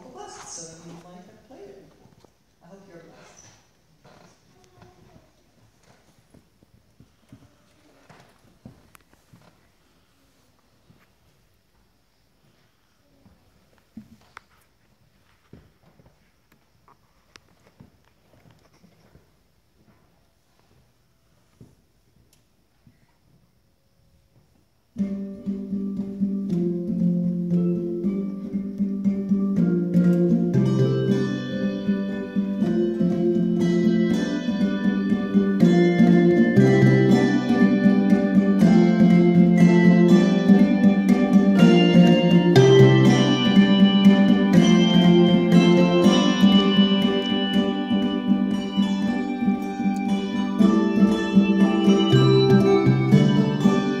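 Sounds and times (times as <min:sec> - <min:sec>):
faint knocks and handling noises: 0:03.2 - 0:23.5
handbells ringing in chords: 0:41.6 - 0:54.0.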